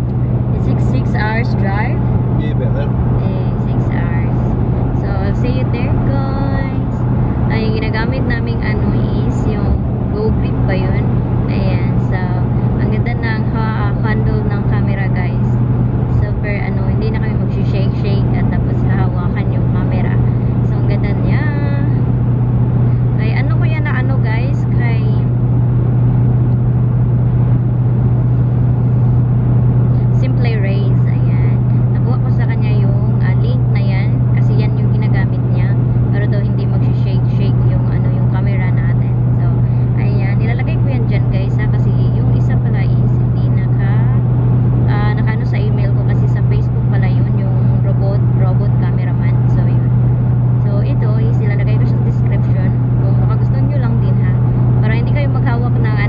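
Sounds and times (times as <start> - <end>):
car cabin road and engine drone: 0.0 - 56.0.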